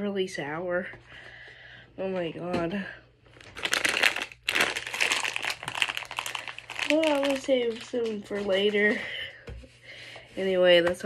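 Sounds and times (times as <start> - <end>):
plastic bag crinkling: 3.3 - 9.0.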